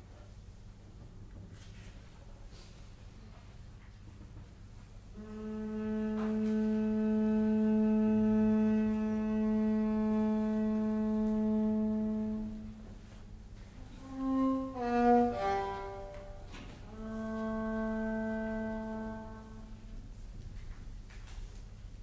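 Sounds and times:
bowed string instrument: 5.1 - 20.2.

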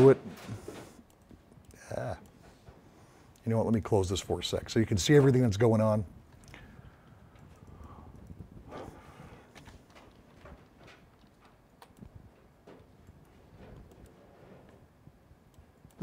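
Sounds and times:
low room noise: 0.0 - 16.0.

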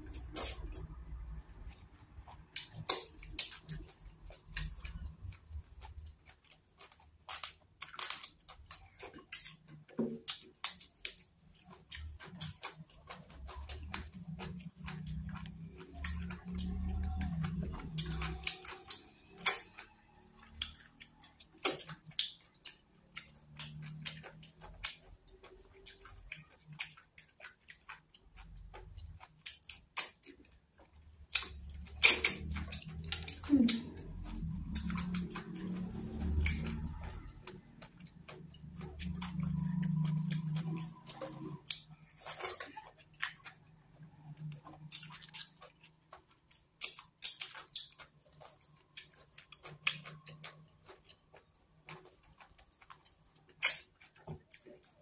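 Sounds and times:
wet chewing: 0.0 - 55.0.

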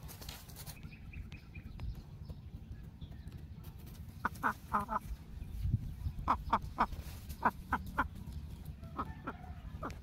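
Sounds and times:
hen clucking: 4.2 - 5.4, 6.0 - 10.0.

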